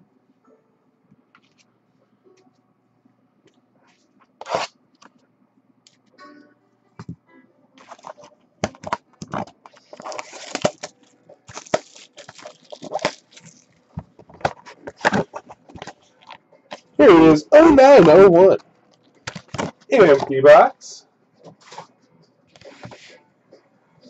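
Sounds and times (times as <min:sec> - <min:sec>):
cardboard box crackling and tearing: 0:10.0 - 0:10.9, 0:11.5 - 0:13.6.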